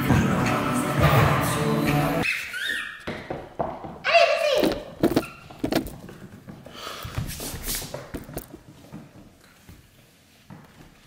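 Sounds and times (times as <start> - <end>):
background music: 0.0 - 2.2
toy squeaks: 2.2 - 3.0
claws and toys tapping on floor: 3.0 - 4.0.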